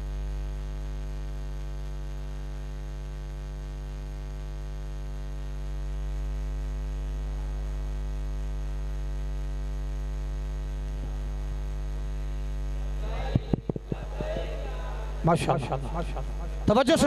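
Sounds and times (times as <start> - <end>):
electrical mains hum: 0.0 - 17.0
handheld microphone knocks: 13.3 - 14.6.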